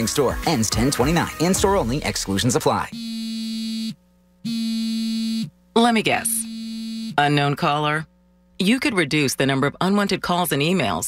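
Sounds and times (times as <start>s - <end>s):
phone ringing buzzy tone: 3.0s - 5.5s, 6.1s - 7.4s.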